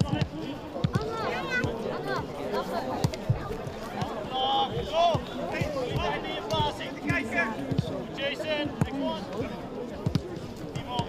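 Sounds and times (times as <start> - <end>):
players shouting: 0.0 - 9.6.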